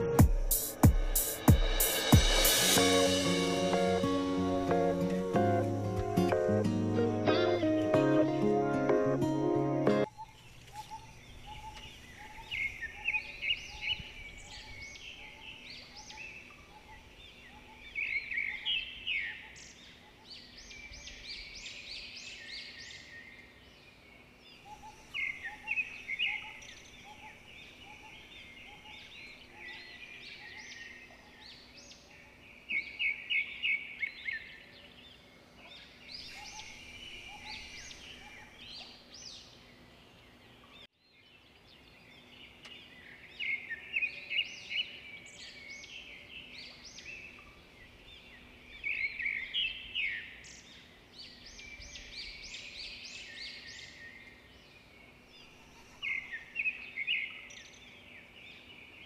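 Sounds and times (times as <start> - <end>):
birds calling and chirping: 0.0 - 59.0.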